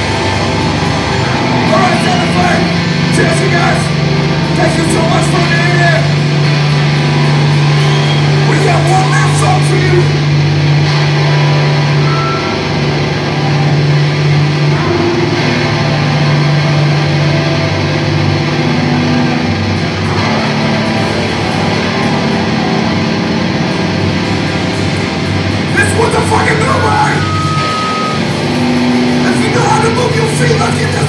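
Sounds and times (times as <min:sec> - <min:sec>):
distorted electric guitar drone: 0:00.0 - 0:31.0.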